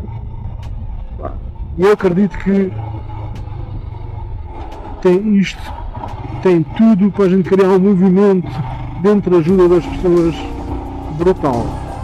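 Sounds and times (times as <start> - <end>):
wind noise: 0.0 - 5.1
motorcycle engine running: 0.0 - 12.0
road noise: 0.0 - 12.0.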